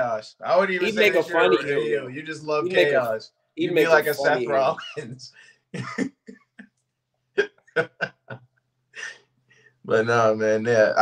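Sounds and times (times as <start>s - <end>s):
man laughing: 5.8s - 6.4s, 7.4s - 8.4s.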